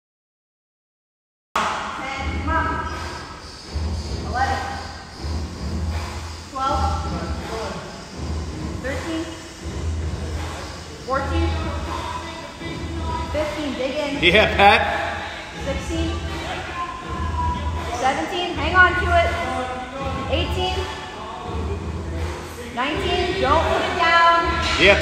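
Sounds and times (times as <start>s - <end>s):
background music with low beat: 1.6s - 25.0s
man calling out: 14.2s - 15.1s.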